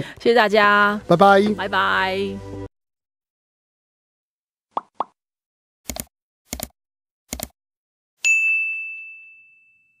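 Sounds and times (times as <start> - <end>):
notification bell ding: 8.2 - 10.0.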